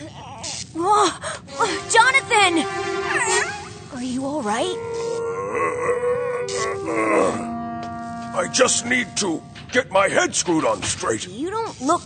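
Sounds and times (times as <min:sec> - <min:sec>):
background music held note: 0:01.5 - 0:10.8
man groaning and grunting: 0:05.5 - 0:07.5.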